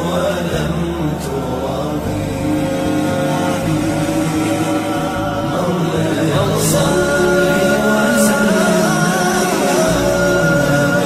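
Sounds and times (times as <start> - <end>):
steady low drone: 0.0 - 11.0
voices chanting held notes: 0.0 - 11.0.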